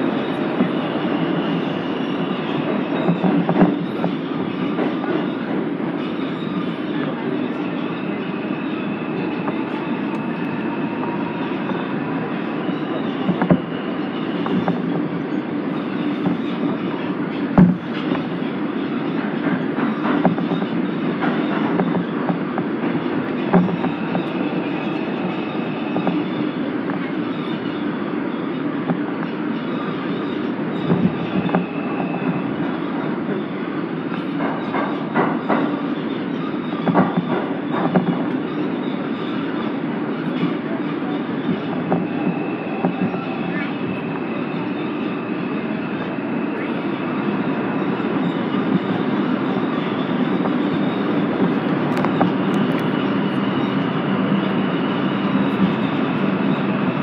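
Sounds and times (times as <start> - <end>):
subway train rumble: 0.0 - 57.0.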